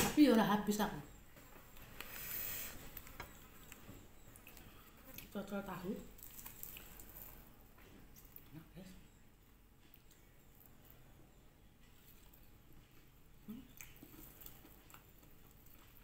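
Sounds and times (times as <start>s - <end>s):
faint chewing and mouth sounds: 1.3s - 16.0s.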